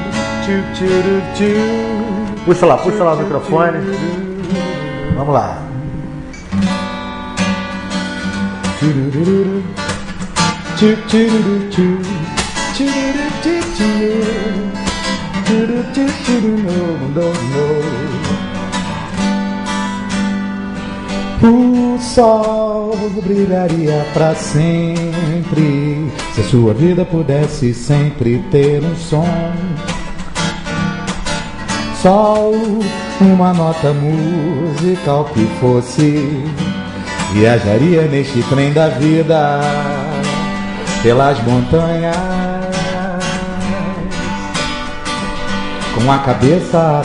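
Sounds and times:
man singing: 0.0 - 6.2, 8.4 - 18.6, 21.3 - 30.2, 31.8 - 44.7, 45.7 - 47.0
acoustic guitar strumming: 0.0 - 47.0.

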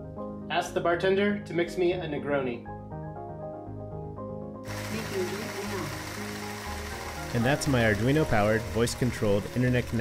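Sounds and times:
small pumps running: 4.7 - 9.1.

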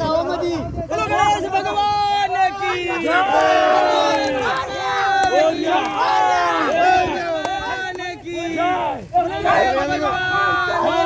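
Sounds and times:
group of people shouting: 0.1 - 11.0.

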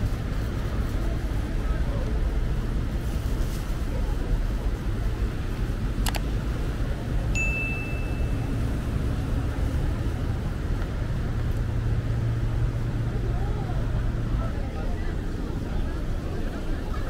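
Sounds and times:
faint voices: 0.0 - 17.0
high ding: 7.4 - 8.5.

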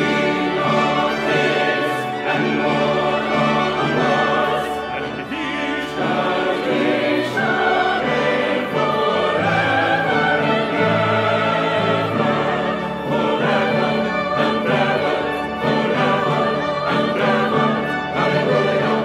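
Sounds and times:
brass ensemble: 0.0 - 19.0
choir singing in parts: 0.0 - 19.0
organ: 0.0 - 19.0.

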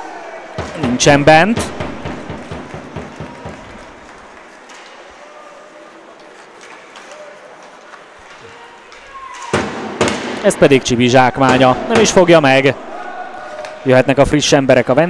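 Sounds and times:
rink hall ambience: 0.0 - 15.0
hockey sticks and puck knocking: 0.5 - 5.1, 6.2 - 10.5.

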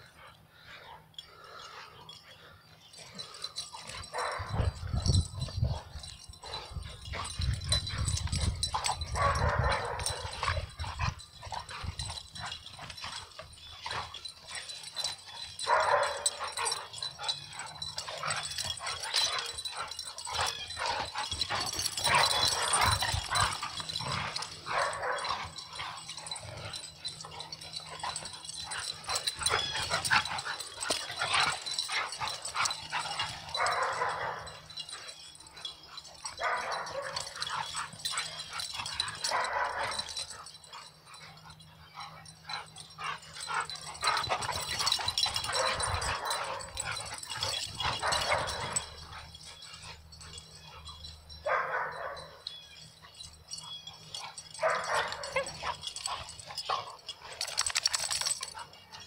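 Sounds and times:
dogs growling while playing: 0.3 - 52.2, 52.8 - 58.9.

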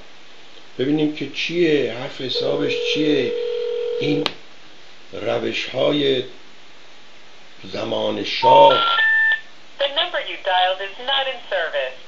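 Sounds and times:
telephone keypad dialing tone: 2.4 - 4.2
voice over phone line: 2.4 - 4.3, 8.4 - 9.0.

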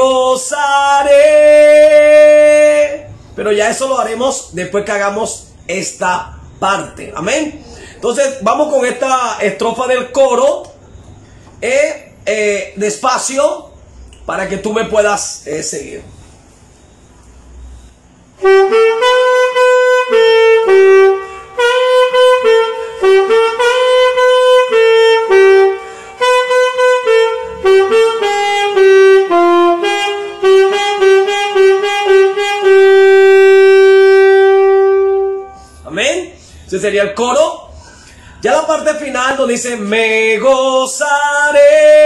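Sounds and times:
alto saxophone melody: 17.7 - 35.9.

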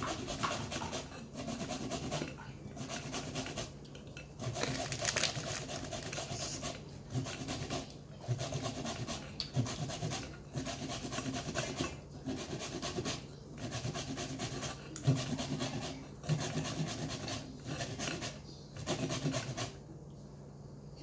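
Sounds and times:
zucchini rasping on a grater: 0.0 - 3.8, 4.4 - 19.8.

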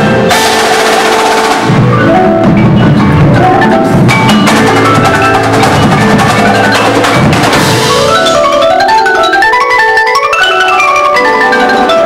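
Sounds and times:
cymbals: 0.0 - 10.2
drums: 0.0 - 12.0
mallet keyboards: 0.0 - 12.0.

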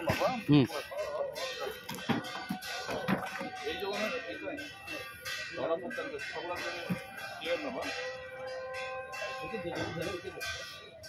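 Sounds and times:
ringing bell-like tone: 0.0 - 11.0.

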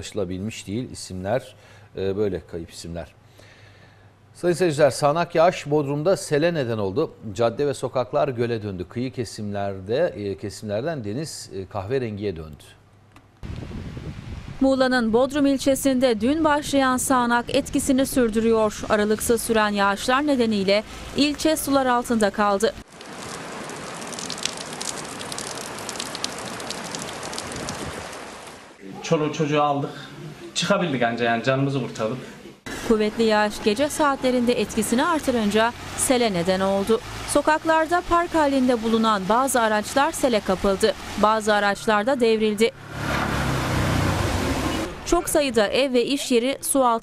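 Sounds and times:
torrential rain: 17.7 - 28.8, 32.7 - 45.5
raindrops ticking: 20.1 - 28.7
steady rushing water: 20.2 - 28.8, 32.9 - 42.1.

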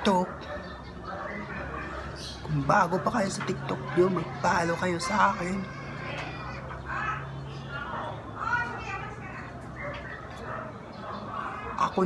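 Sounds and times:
children calling at play: 0.0 - 12.0.

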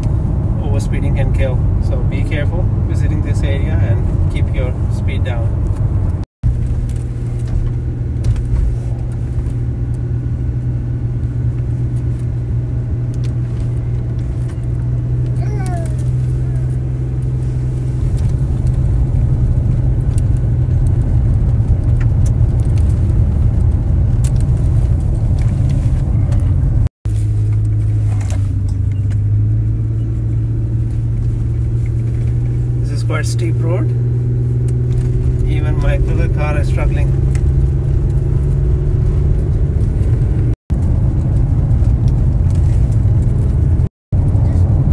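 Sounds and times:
car engine labouring: 0.0 - 44.9.

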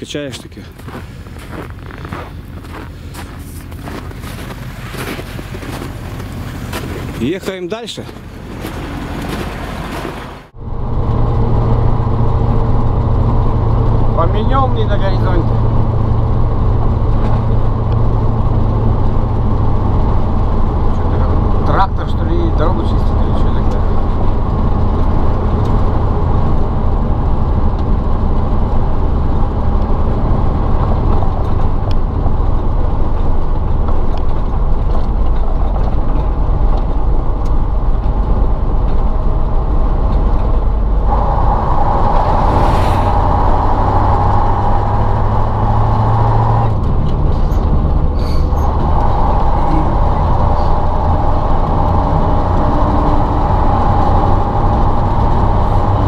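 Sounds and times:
truck diesel engine running: 0.0 - 56.0
passing vehicle rushing: 39.3 - 56.0.

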